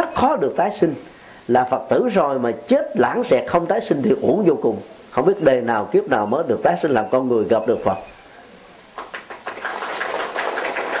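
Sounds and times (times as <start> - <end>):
audience applauding: 9.0 - 11.0.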